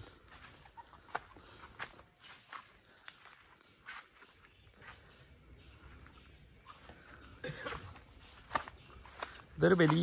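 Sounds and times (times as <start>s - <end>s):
faint footsteps: 0.0s - 10.0s.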